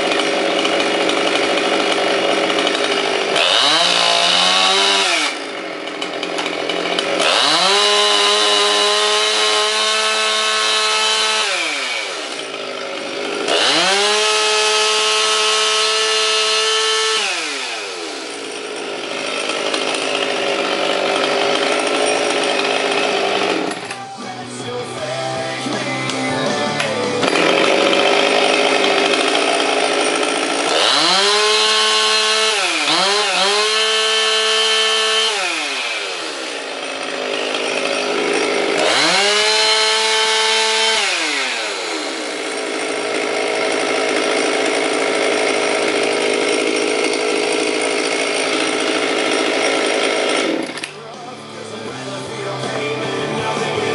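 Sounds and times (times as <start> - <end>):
chainsaw idling and revving: 0.0 - 53.9
music: 23.8 - 27.3, 50.9 - 53.9.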